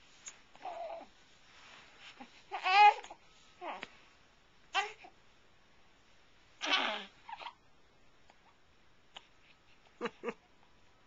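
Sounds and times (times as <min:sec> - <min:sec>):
baby fussing grunts: 0:06.6 - 0:07.6.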